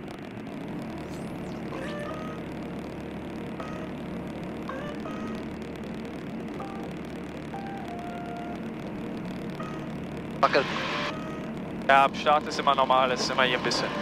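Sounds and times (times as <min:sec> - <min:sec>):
light aircraft engine and propeller: 0:00.0 - 0:14.0
short electronic tones: 0:01.0 - 0:02.6, 0:03.5 - 0:04.1, 0:04.7 - 0:05.6, 0:06.6 - 0:08.7, 0:09.5 - 0:11.6.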